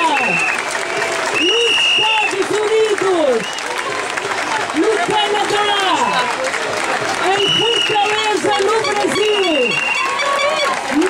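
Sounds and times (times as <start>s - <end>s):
crowd chanting and shouting: 0.0s - 11.0s
people clapping: 0.0s - 11.0s.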